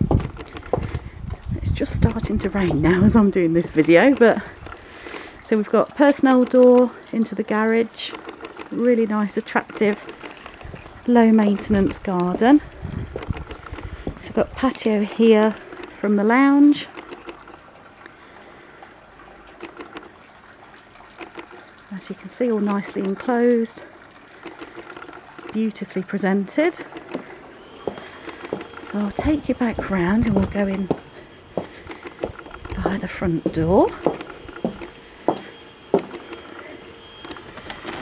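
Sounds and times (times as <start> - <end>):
raindrops ticking: 0.0 - 35.0
light rain hiss: 0.0 - 38.0
footsteps on paving: 0.1 - 1.5, 27.8 - 36.2.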